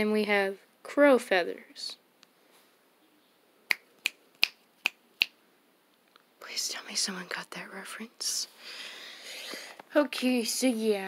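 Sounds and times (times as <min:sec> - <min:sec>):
finger snaps: 0:03.7 - 0:05.4.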